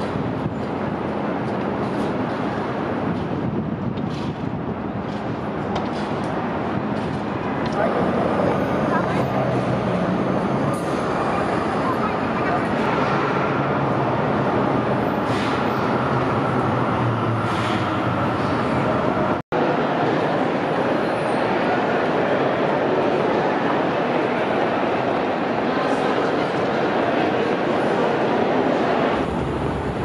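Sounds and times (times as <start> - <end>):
traffic noise: 0.0 - 30.0
voices of passers-by: 4.9 - 30.0.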